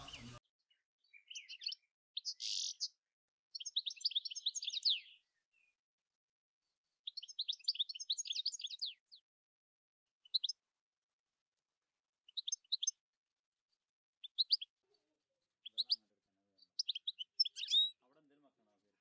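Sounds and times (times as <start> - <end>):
small bird chirping: 0.0 - 5.8, 7.0 - 9.2, 10.2 - 10.6, 12.3 - 13.0, 14.2 - 14.8, 15.6 - 18.0.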